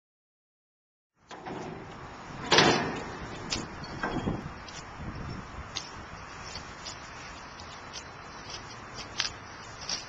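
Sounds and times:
steady background noise: 1.2 - 10.0.

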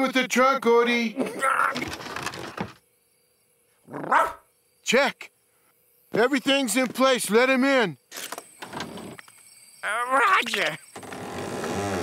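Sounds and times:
person speaking: 9.8 - 10.8.

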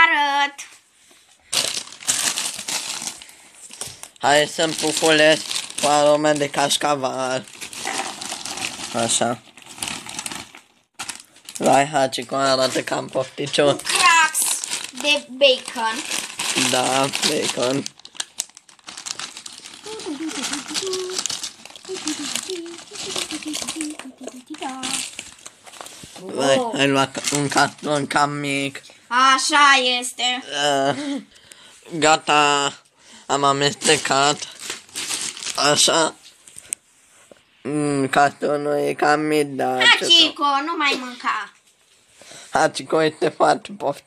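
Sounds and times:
plastic snack bag crinkling: 1.4 - 28.2, 33.5 - 36.6
short voice sound: 19.9 - 21.3.

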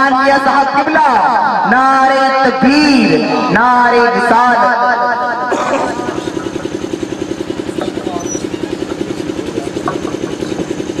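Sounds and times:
engine running with rapid pulse: 2.9 - 11.0.

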